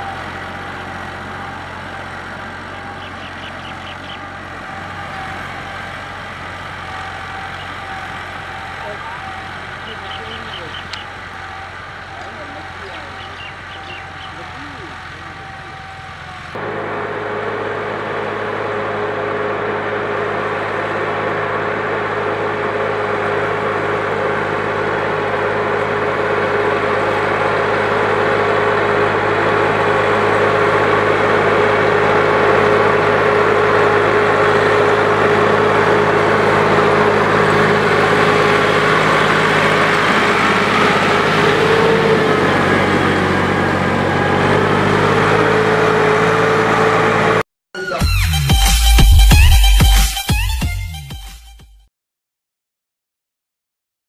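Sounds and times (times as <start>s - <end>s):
tractor diesel engine under load: 0.0s - 51.2s.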